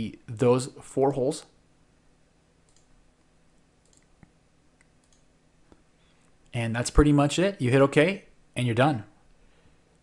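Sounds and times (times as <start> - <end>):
faint computer mouse clicks: 2.6 - 2.9, 3.8 - 5.8.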